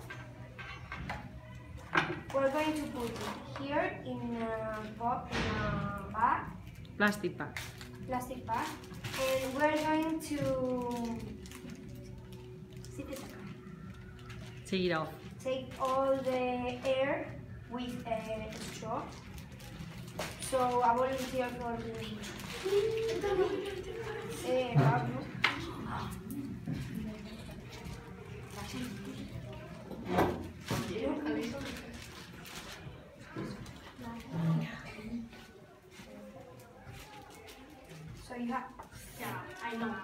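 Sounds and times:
plastic bag rustling: 0:02.4 - 0:05.2, 0:07.4 - 0:29.8, 0:30.4 - 0:34.4
children talking: 0:20.4 - 0:40.0.

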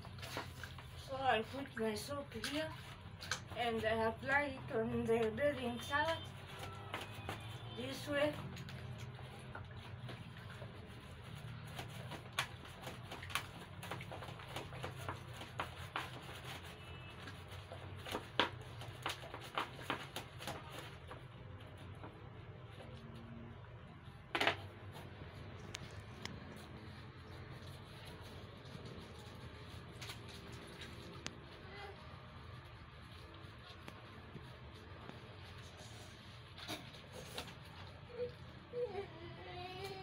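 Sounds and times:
wet cloth rubbing: 0:00.0 - 0:23.2, 0:24.8 - 0:39.0.

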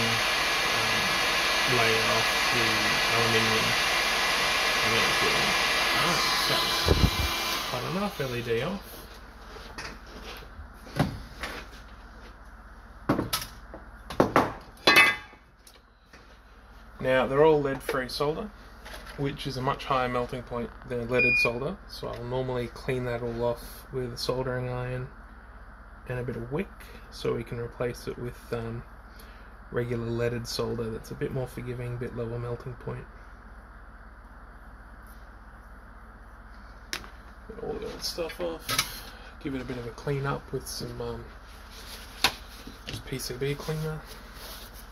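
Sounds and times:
faint steady hum: 0:00.0 - 0:44.9.

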